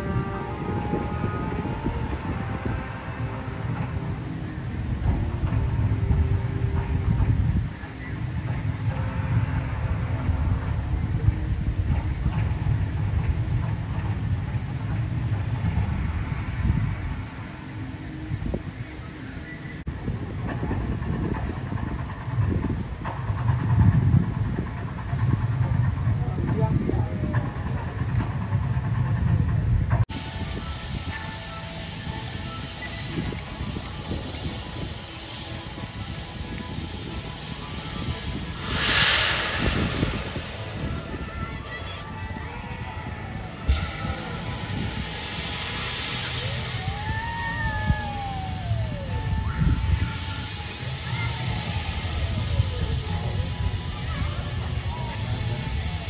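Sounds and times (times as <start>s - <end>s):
ride mechanical rumble: 0.0s - 56.0s
people's voices: 30.5s - 56.0s.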